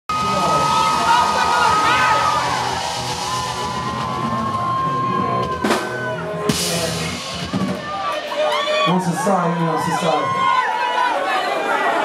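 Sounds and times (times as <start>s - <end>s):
live band music: 0.1s - 10.6s.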